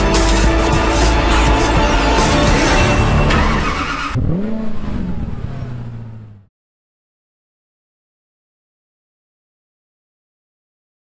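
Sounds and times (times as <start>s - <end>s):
car engine revving and idling: 0.0s - 6.5s.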